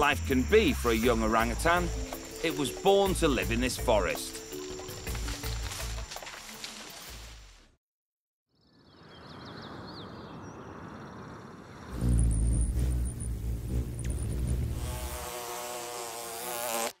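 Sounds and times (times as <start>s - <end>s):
high bird chirps: 8.5s - 13.4s
hummingbird wings humming: 11.0s - 16.9s
bumblebee buzzing: 11.8s - 17.0s.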